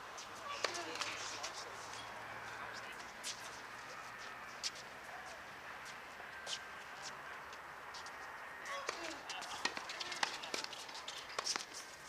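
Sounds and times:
ball bounces: 0.5s - 1.2s, 8.7s - 11.7s
tennis ball strikes: 0.5s - 1.2s, 8.7s - 11.7s.

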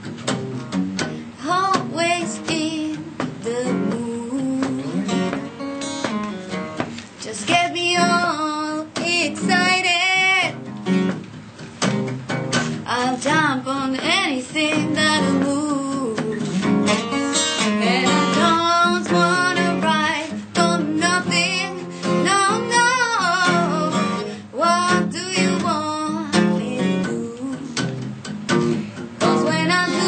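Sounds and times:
strummed acoustic guitar: 0.0s - 30.0s
woman singing blues: 1.0s - 10.8s, 12.5s - 30.0s.

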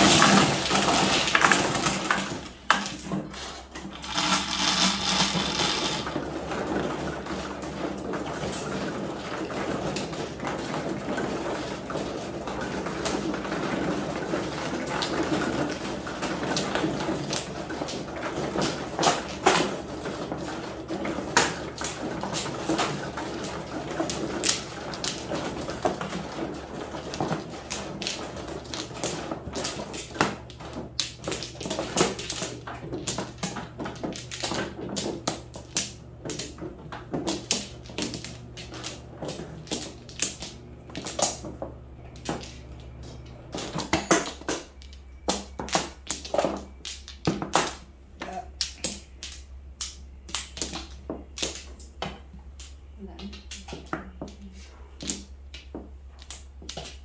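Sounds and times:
plastic tiles clicking: 43.7s - 57.0s.

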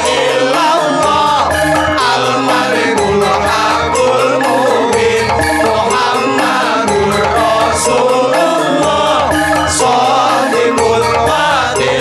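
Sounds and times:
men chanting together: 0.0s - 12.0s.

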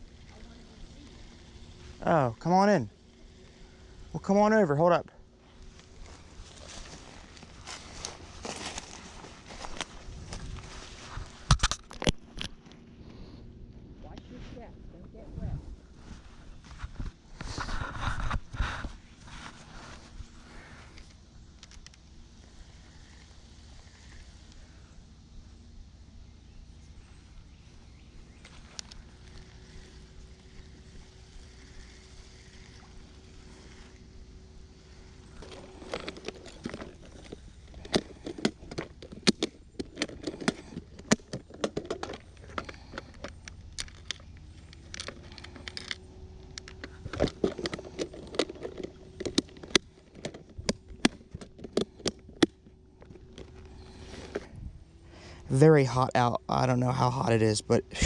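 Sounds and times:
faint steady hum: 0.0s - 58.0s
plastic tackle box clicks and rattles: 35.4s - 54.5s.

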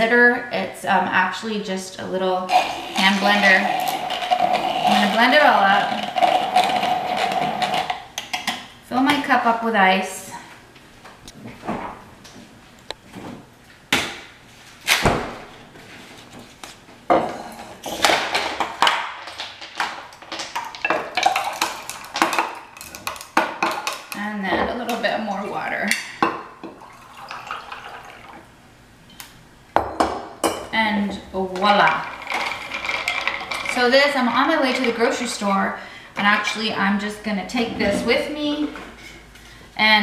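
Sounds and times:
handheld blender whirring: 2.5s - 8.0s
water pouring onto ice: 2.6s - 7.9s, 26.8s - 28.4s.

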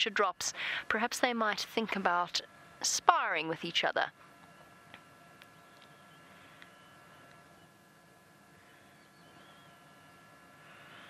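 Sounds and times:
faint outdoor bush ambience: 0.0s - 11.0s.

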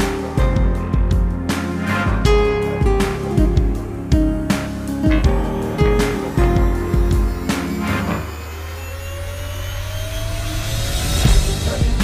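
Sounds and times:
rising locomotive whine: 5.3s - 12.0s.

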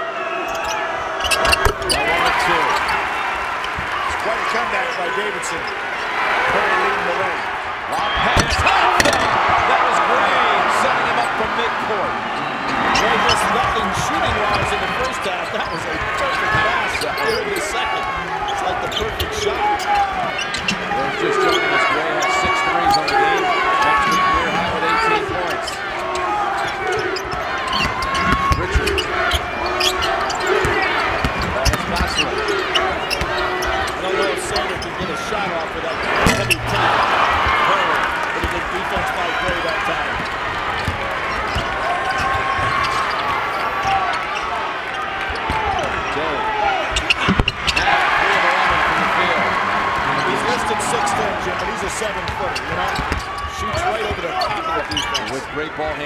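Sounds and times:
crowd murmuring: 6.4s - 44.6s
basketball bouncing on court: 26.6s - 33.7s, 38.4s - 43.9s, 45.3s - 46.2s, 46.9s - 47.8s, 52.6s - 55.2s.

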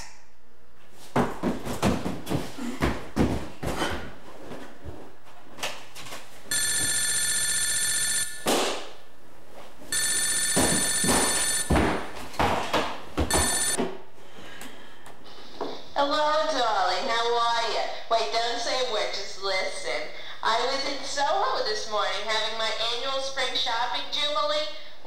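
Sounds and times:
telephone ringing: 6.5s - 8.4s, 9.9s - 11.8s, 13.3s - 13.8s.

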